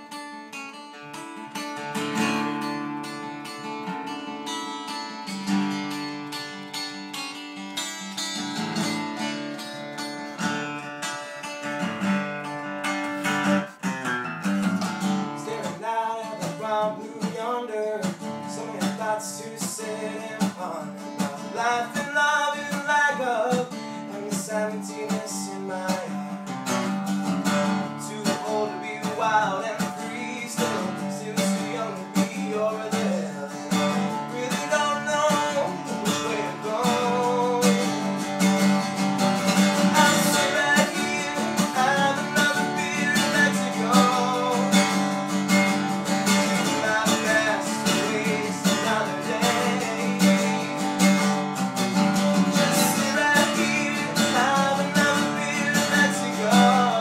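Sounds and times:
acoustic guitar strumming: 0.0 - 57.0
man singing: 15.2 - 26.6, 27.4 - 38.8, 39.5 - 51.4, 52.2 - 57.0.

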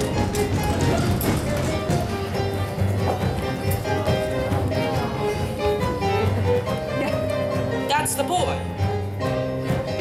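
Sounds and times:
theatre pit band music: 0.0 - 10.0.

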